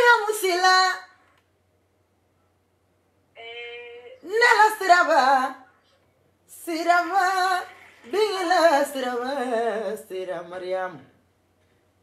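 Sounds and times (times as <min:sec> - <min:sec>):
woman singing: 0:00.0 - 0:01.2, 0:03.4 - 0:05.7, 0:06.5 - 0:11.0.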